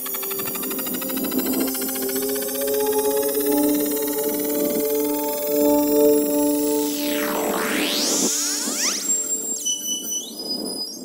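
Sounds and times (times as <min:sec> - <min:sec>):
high synthesized tones: 0:00.0 - 0:11.0.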